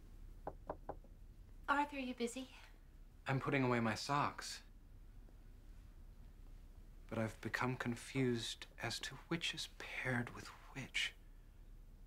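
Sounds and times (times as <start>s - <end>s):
knocks on a door: 0.4s - 1.1s
woman speaking: 1.7s - 2.7s.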